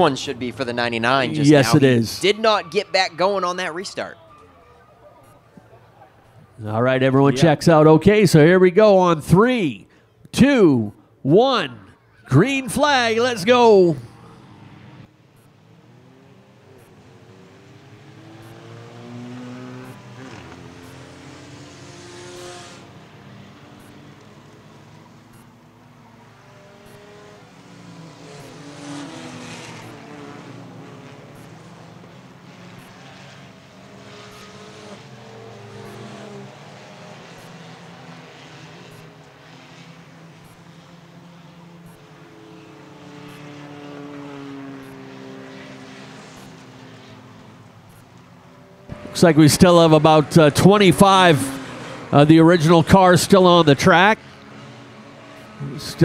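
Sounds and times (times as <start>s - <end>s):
stock cars racing: 0.0s - 56.0s.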